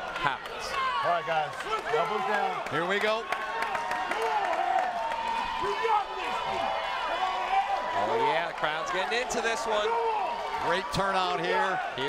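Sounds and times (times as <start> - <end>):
crowd clapping: 0.0 - 11.8
crowd cheering and calling out: 0.0 - 12.0.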